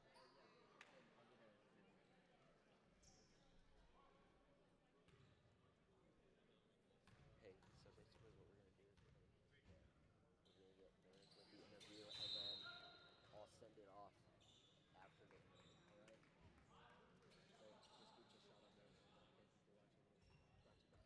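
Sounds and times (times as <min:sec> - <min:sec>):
referee's whistle: 0:12.1 - 0:13.0.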